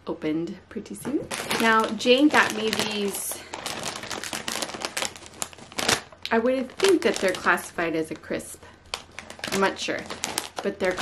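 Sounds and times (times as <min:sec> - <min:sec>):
crisp packet crinkling: 0:01.2 - 0:11.0.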